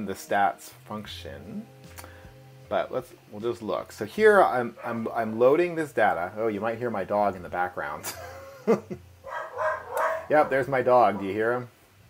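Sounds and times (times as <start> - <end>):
dog barking: 4.8 - 5.1, 9.2 - 10.5.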